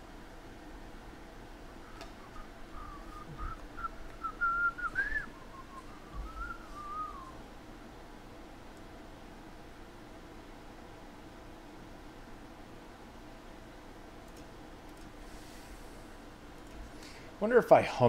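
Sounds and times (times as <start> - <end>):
person whistling a tune: 1.8 - 7.4.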